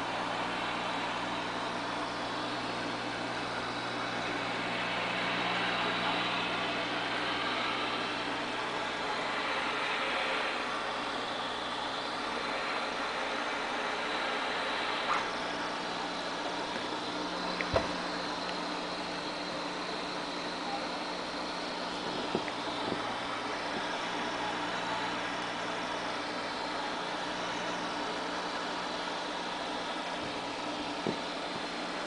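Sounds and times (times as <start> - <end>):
aquarium air pump hum and hiss: 0.0 - 32.0.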